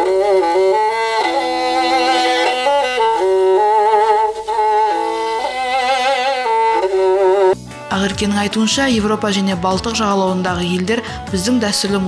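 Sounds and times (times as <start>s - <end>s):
bowed fiddle slow melody: 0.0s - 8.0s.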